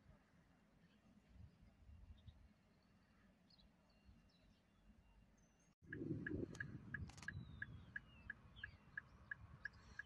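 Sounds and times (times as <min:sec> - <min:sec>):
faint bird chirps: 0:00.8 - 0:10.0.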